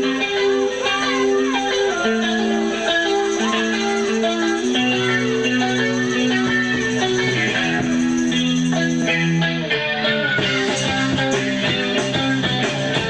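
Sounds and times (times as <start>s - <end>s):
bass line: 0.0s - 13.0s
electric guitar notes: 0.0s - 13.0s.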